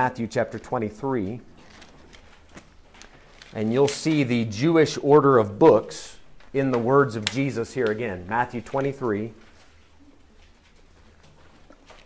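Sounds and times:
pages turning: 1.2s - 4.4s, 6.2s - 12.0s.

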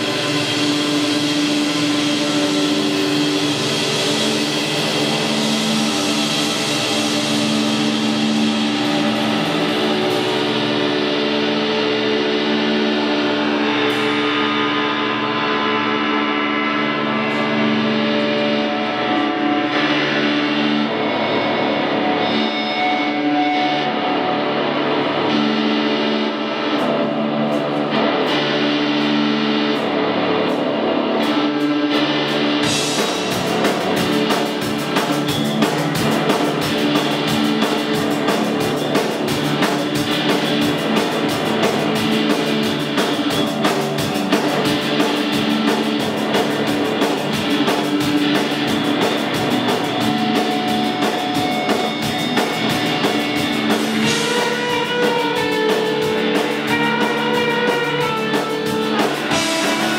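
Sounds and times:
distorted electric guitar drone: 0.0s - 59.9s.

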